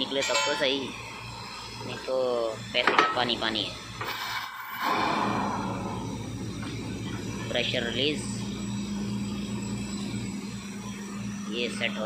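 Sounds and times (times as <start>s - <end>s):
drilling rig engine hum: 4.8s - 12.0s.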